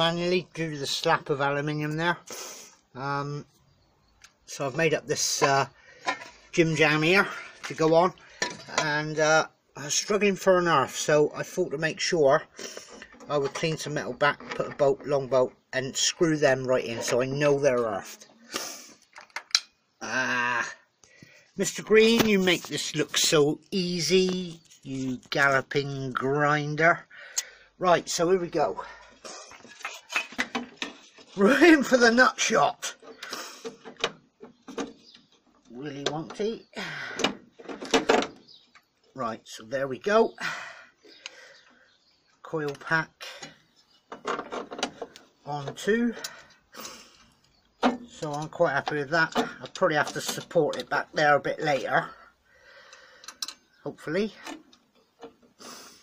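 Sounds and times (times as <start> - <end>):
small sharp metallic clicks: 18.6 - 19.8, 52.9 - 53.7.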